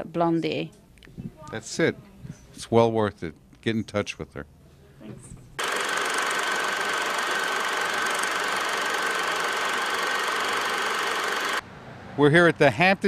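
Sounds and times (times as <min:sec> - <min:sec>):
film projector running clatter: 0:05.6 - 0:11.6.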